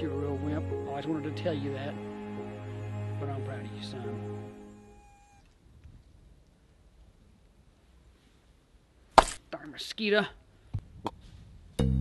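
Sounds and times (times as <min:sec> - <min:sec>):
background music note: 0:00.0 - 0:05.4, 0:11.8 - 0:12.0.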